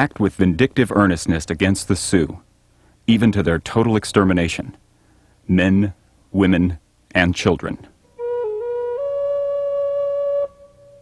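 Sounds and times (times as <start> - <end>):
flute holding a long note: 8.2 - 11.0.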